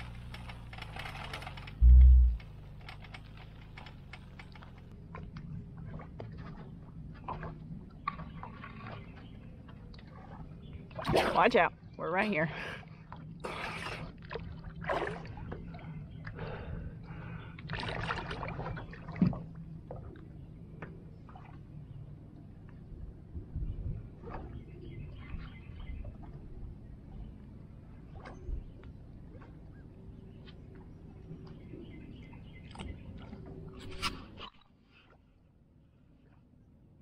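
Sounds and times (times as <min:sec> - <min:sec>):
steady low hum: 0:00.0 - 0:07.1
water sloshing and lapping: 0:00.0 - 0:22.8, 0:24.0 - 0:35.4.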